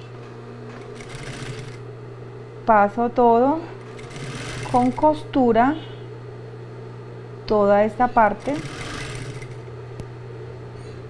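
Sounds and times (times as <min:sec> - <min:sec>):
sewing machine stitching: 0:00.7 - 0:01.8, 0:03.8 - 0:05.2, 0:08.2 - 0:09.7.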